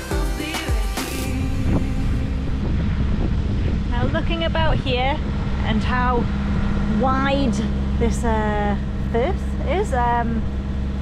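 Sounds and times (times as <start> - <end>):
background music: 0.0 - 2.7
wind on microphone: 1.2 - 11.0.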